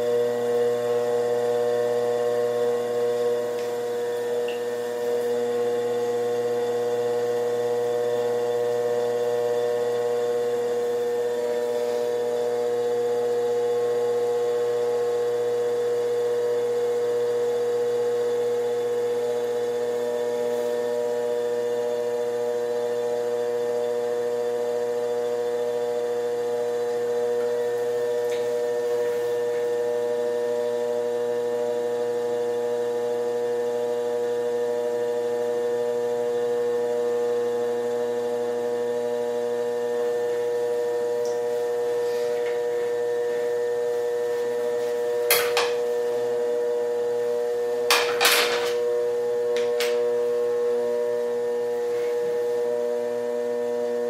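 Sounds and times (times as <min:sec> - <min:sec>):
potter's wheel motor humming: 0:00.0 - 0:54.0.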